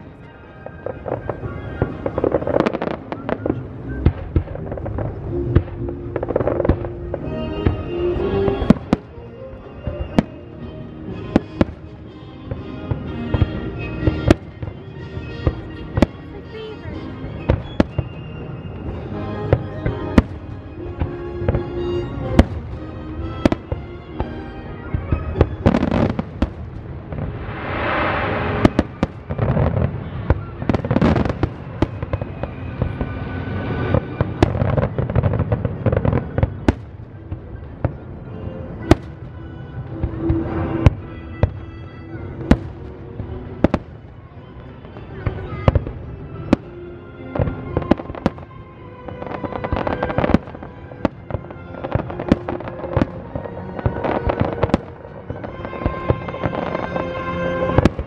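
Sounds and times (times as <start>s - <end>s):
fireworks bursting: 0.0s - 58.0s
music playing: 0.0s - 58.0s.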